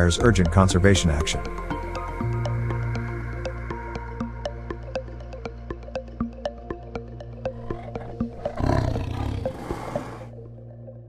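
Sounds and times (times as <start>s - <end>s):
loud rough roar: 7.6s - 10.3s.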